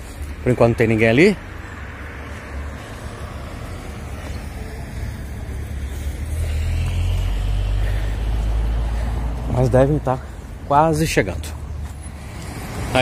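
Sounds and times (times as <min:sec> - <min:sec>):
car passing: 0:00.0 - 0:13.0.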